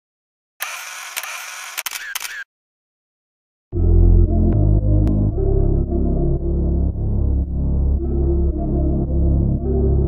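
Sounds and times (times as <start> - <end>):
camera shutter clicks: 0.6 - 2.4
camera whirring hiss: 0.6 - 2.4.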